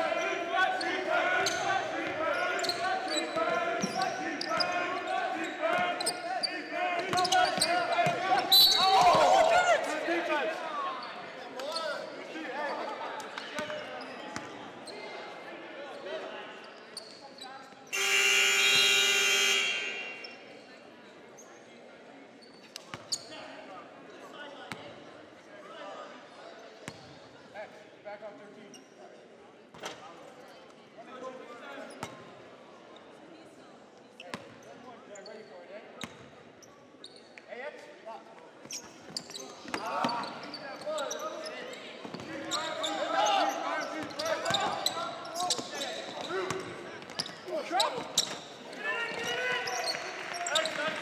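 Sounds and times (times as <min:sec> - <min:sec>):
players shouting: 0:00.0 - 0:10.6, 0:18.0 - 0:20.3, 0:42.4 - 0:45.5, 0:48.7 - 0:51.0
scoreboard horn: 0:18.0 - 0:20.3
sharp whistle blast: 0:18.0 - 0:20.3
sneakers squeaking on hardwood: 0:38.6 - 0:51.0.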